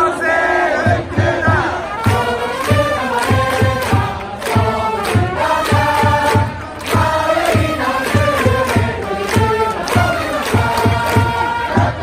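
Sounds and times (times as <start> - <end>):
crowd singing along: 0.0 - 12.0
trumpets playing a cheer song: 0.2 - 12.0
bass drum beat: 0.8 - 12.0.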